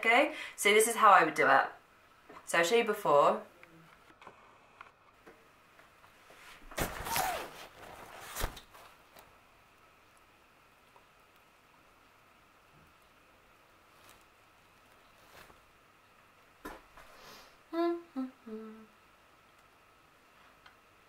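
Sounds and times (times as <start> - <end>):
faint steady whine: 0.0 - 21.0
woman humming: 17.7 - 19.0.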